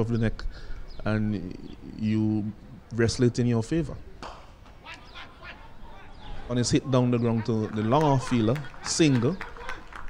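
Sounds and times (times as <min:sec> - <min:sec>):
distant voices calling: 0:04.0 - 0:10.0.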